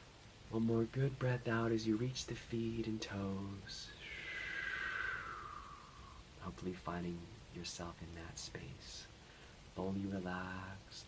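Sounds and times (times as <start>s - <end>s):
man breathing out slowly: 3.9s - 6.2s.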